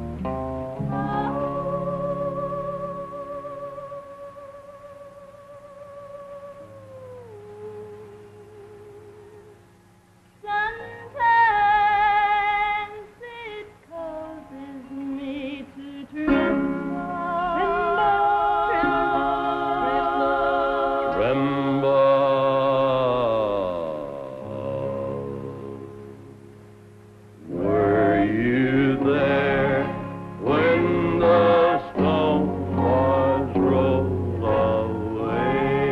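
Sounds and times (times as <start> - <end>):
women singing gospel: 0.8 - 9.0, 10.4 - 25.5, 27.4 - 35.9.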